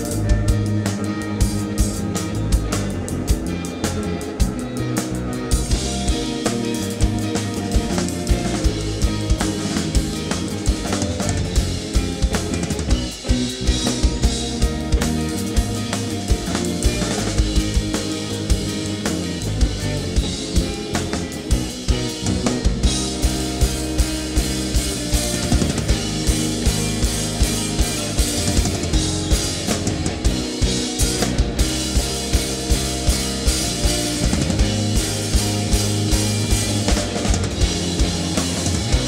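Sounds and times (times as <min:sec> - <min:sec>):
electric bass: 0:00.0 - 0:39.0
electric guitars: 0:00.0 - 0:39.0.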